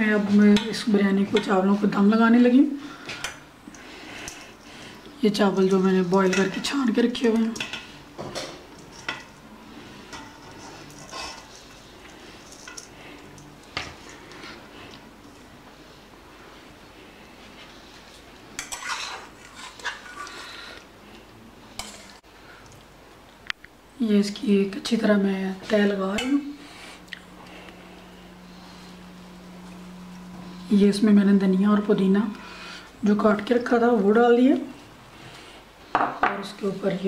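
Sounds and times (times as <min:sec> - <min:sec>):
low room noise: 0:00.0 - 0:37.0
metal spatula scraping pots: 0:08.8 - 0:13.4, 0:18.6 - 0:20.7, 0:21.8 - 0:22.2.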